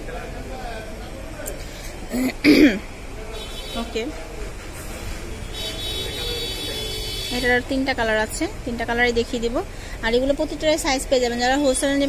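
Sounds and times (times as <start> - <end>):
person clearing throat: 2.1 - 2.9.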